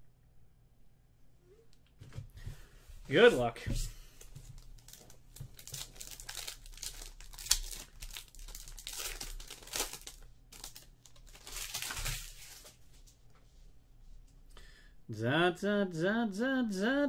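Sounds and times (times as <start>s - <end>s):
foil wrapper crinkling: 4.4s - 12.8s
foil pack tearing: 4.7s - 12.7s.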